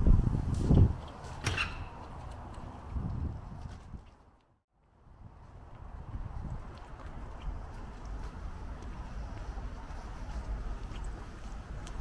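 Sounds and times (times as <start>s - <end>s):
footsteps on paved path: 0.1s - 12.0s.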